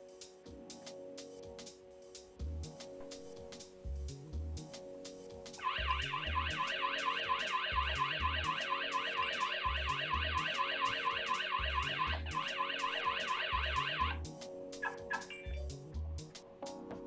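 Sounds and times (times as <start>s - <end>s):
background music with low beat: 0.0s - 17.0s
warbling alarm siren: 5.6s - 14.2s.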